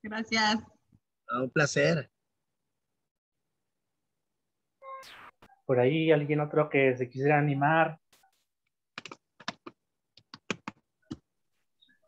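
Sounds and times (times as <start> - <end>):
computer keyboard taps: 9.0 - 11.2.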